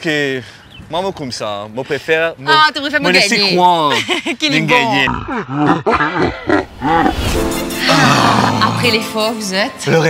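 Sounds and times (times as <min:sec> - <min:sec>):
person grunting: 0:07.8 - 0:08.8.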